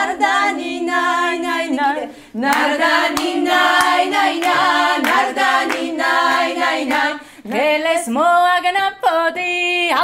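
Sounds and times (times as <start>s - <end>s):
women singing in harmony: 0.0s - 10.0s
hand claps: 2.4s - 7.2s.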